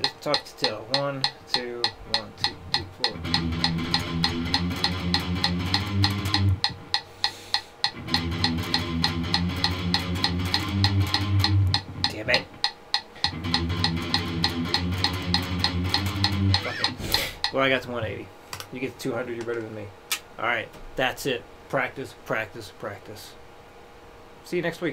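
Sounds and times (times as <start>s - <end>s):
electric guitar palm-muted riff: 0.0s - 17.6s
metronome click: 0.0s - 17.6s.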